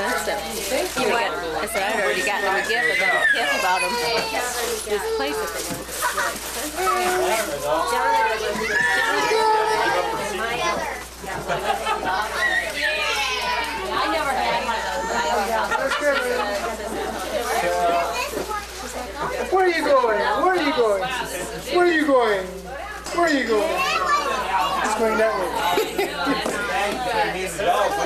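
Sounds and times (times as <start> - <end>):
overlapping conversation: 0.0 - 28.0.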